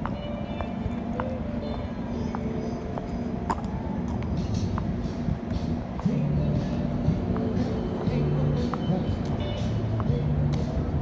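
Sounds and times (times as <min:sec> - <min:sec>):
city street traffic: 0:00.0 - 0:11.0
music playing: 0:00.0 - 0:11.0.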